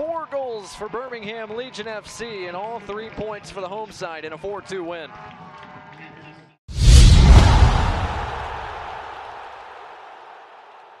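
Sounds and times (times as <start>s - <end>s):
deep boom: 6.7s - 9.0s
rushing whoosh: 6.7s - 9.0s.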